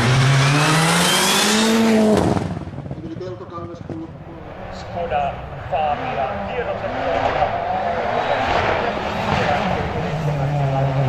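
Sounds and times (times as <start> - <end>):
rally car engine driving past: 3.8 - 11.0.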